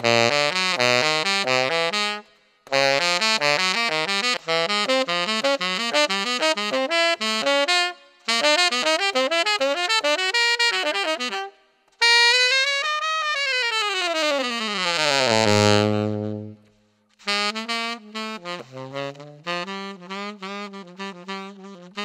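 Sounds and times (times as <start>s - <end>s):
tenor saxophone playing: 0.0s - 22.0s.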